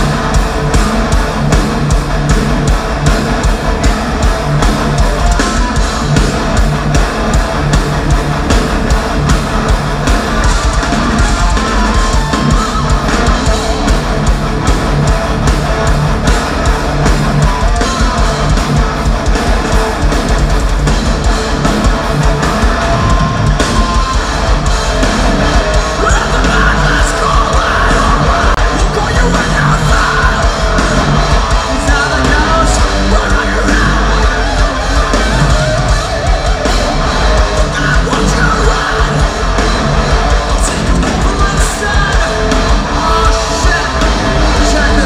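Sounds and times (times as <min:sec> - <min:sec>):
metal band playing live: 0:00.0 - 0:45.0.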